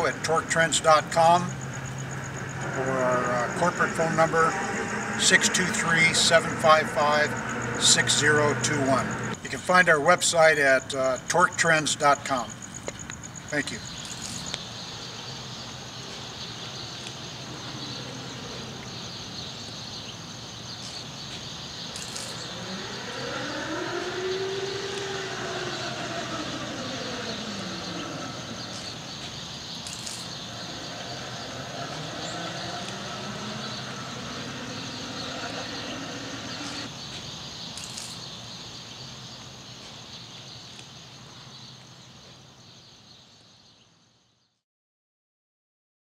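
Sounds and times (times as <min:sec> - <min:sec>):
high insect buzz: 0:00.9 - 0:09.4, 0:12.5 - 0:40.2
electric motor whine: 0:01.7 - 0:09.4, 0:21.9 - 0:36.9.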